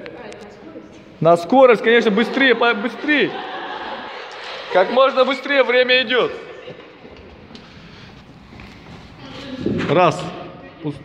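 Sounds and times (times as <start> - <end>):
wind noise on microphone: 9.4 - 9.9.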